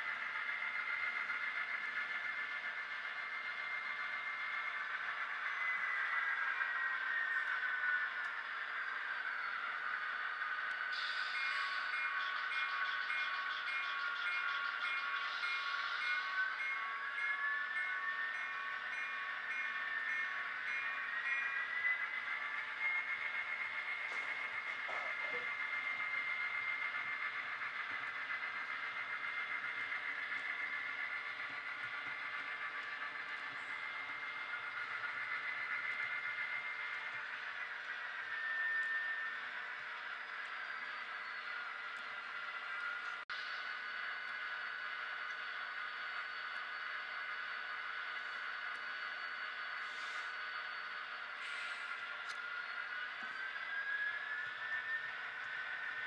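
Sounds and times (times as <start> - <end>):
diesel engine sound from speakers: 0.0 - 56.0.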